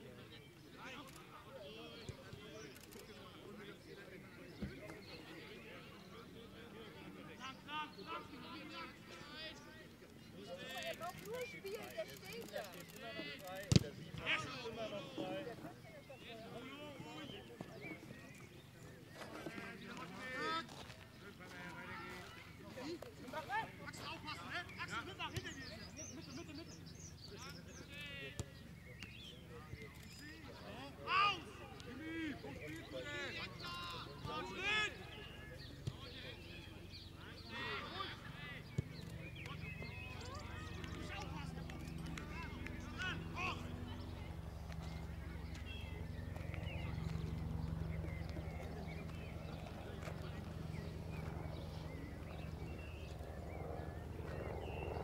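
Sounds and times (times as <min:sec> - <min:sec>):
distant footballers shouting: 0:00.1 - 0:55.0
distant shouts: 0:30.7 - 0:44.5.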